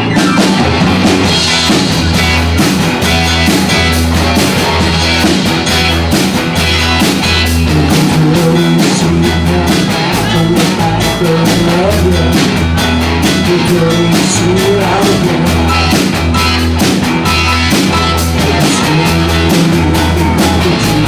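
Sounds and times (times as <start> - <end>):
drum kit beat: 0.0 - 21.0
electric bass: 0.0 - 21.0
electric guitars: 0.0 - 21.0
keyboards: 0.0 - 21.0.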